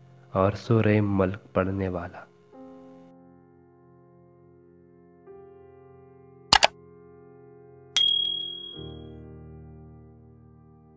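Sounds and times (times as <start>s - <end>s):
soft background music: 0.0s - 10.9s
bright notification bell ding: 8.0s - 9.0s.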